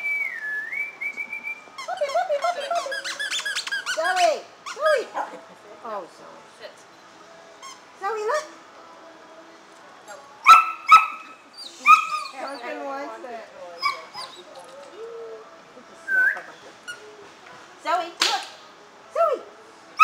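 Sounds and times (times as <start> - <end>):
quiet voices: 0.3 - 17.8
puppy barking: 10.4 - 12.5.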